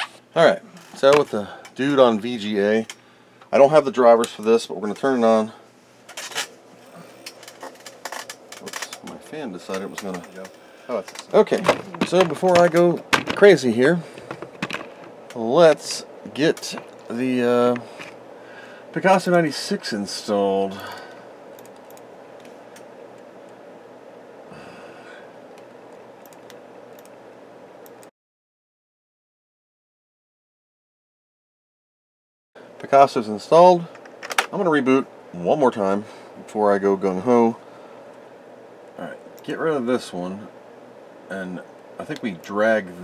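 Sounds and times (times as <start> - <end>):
cooling fan running: 0.0 - 28.1, 32.6 - 43.0
computer clicks and rattles: 7.2 - 15.4, 20.8 - 23.3, 25.5 - 27.2, 34.0 - 34.5.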